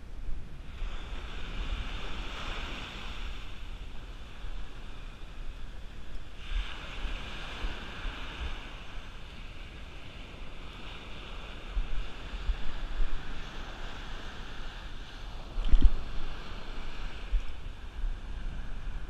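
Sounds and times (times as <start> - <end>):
wind buffeting microphone: 0.0 - 19.0
surf breaking on beach: 0.6 - 19.0.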